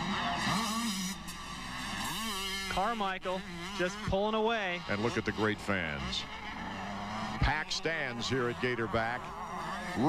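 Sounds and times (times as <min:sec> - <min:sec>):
two-stroke motocross bike revving: 0:00.0 - 0:10.0.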